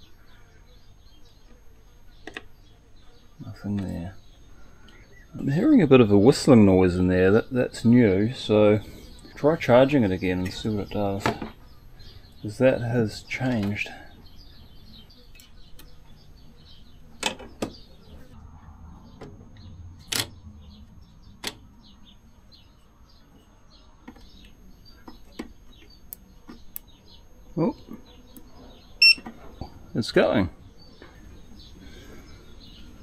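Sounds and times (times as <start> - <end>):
short electronic beep: 29.0 - 29.2.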